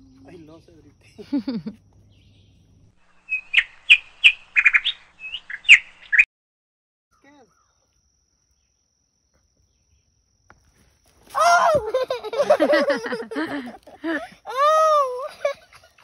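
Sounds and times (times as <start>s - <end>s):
songbird chirping: 0.0s - 6.3s, 7.1s - 11.2s.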